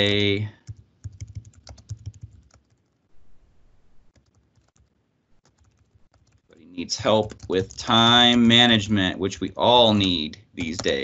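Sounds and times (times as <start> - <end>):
typing on computer keyboard: 0.0 - 3.0, 4.1 - 8.5, 9.3 - 11.0.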